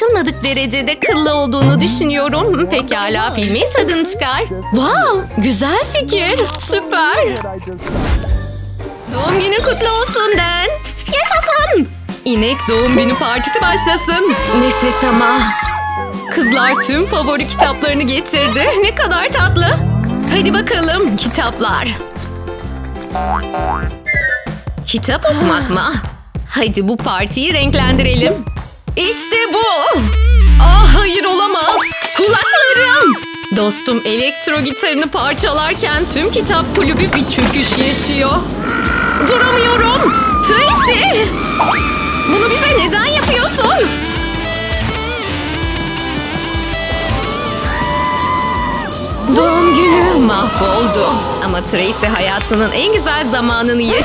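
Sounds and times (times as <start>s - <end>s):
light comedic music: 0.0s - 54.0s
rising cartoon glide effect: 1.6s - 2.2s
rock electric guitar: 43.0s - 49.6s.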